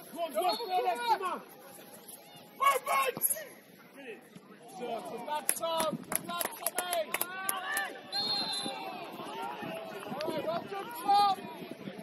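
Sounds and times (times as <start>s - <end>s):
players shouting: 6.5s - 12.0s
referee's whistle blast: 8.1s - 8.9s.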